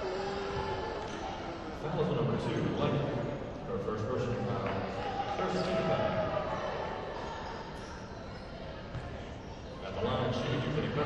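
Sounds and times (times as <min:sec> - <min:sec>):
voices in a gymnasium: 0:00.0 - 0:11.0.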